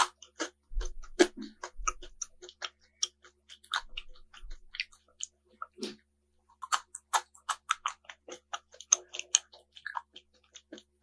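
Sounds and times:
chocolate balls crunching: 0.0s - 11.0s.

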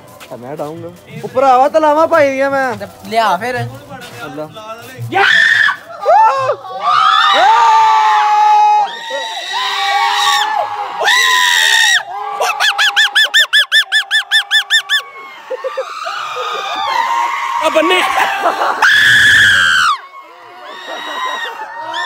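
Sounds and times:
men yelling high-pitched shouts: 5.0s - 20.0s.

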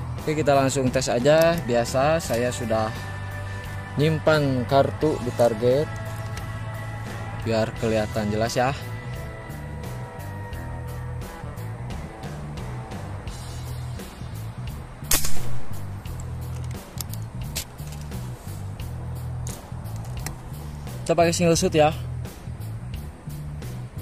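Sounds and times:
background music with beat: 0.0s - 24.0s
air rifle shot: 15.1s - 15.9s.

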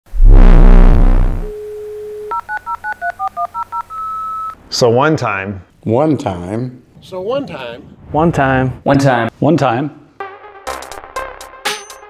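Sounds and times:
loud deep hit: 0.1s - 1.5s
telephone dial tone: 1.6s - 4.6s.

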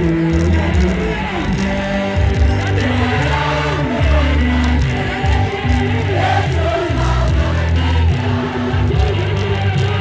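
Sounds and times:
loud held bass line: 0.0s - 10.0s
group of voices singing gospel: 1.1s - 10.0s.

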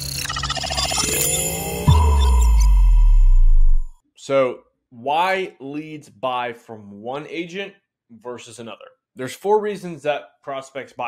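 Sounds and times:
deep bass boom: 1.6s - 4.0s.

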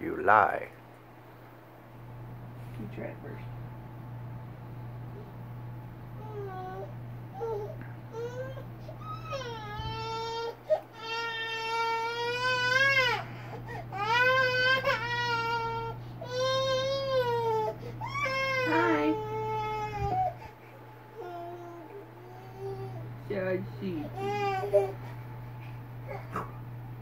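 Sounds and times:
steady low hum: 0.0s - 27.0s
baby crying: 6.2s - 20.5s, 21.2s - 23.0s, 24.2s - 25.0s.

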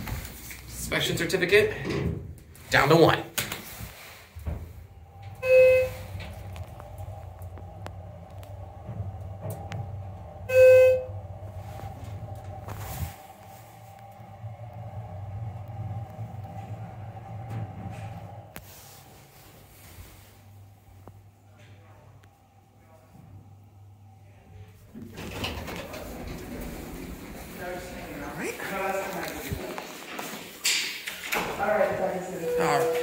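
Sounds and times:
elevator low hum: 3.7s - 33.0s.

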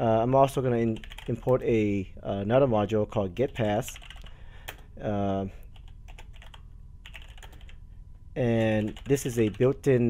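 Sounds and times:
keyboard typing: 0.9s - 1.6s, 3.5s - 4.8s, 5.7s - 7.8s, 8.5s - 9.8s.

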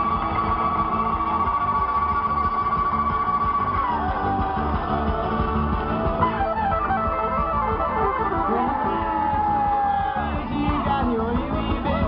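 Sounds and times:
bluegrass string band playing: 0.0s - 12.0s.

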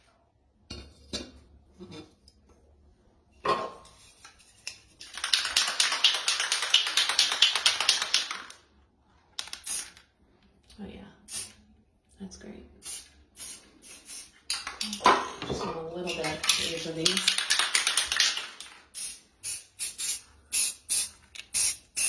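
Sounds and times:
spray can rattling when shaken: 4.6s - 8.6s, 9.4s - 10.0s, 16.0s - 22.0s.

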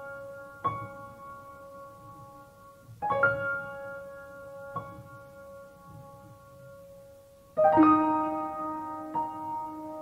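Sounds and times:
soft piano chord ringing: 0.0s - 10.0s.

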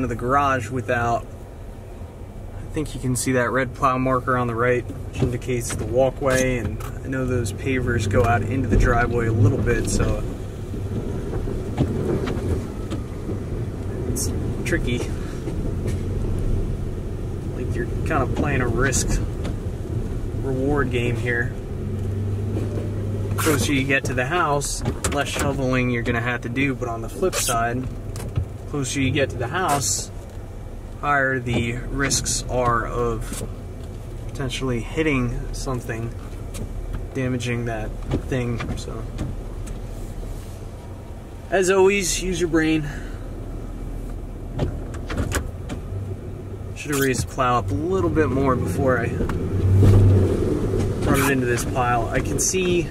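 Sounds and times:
truck engine low rumble: 0.0s - 52.9s.

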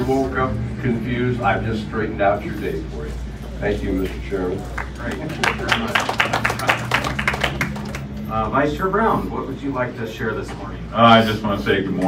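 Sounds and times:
audience applause: 4.6s - 8.2s.

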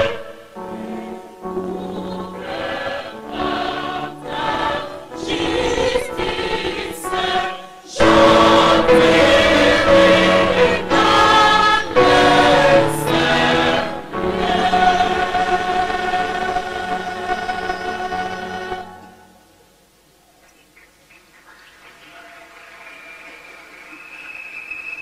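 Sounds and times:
choir singing a hymn: 0.0s - 19.4s.

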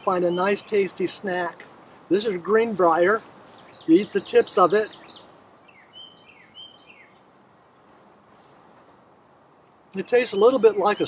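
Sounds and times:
quiet steady background hiss: 0.0s - 11.0s
faint bird chirps: 3.5s - 8.6s.

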